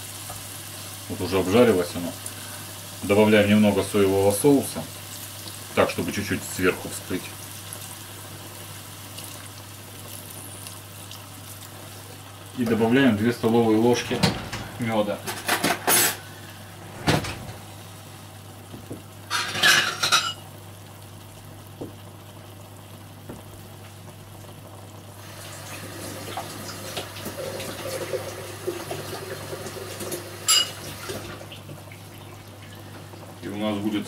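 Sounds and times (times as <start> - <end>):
kitchen utensils clattering: 14.0 - 16.3, 19.3 - 20.4, 30.4 - 31.3.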